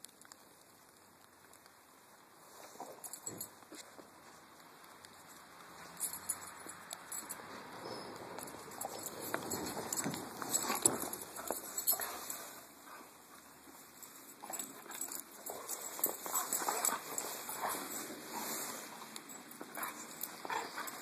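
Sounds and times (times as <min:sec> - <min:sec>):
paw steps crunching snow: 0:06.0 - 0:21.0.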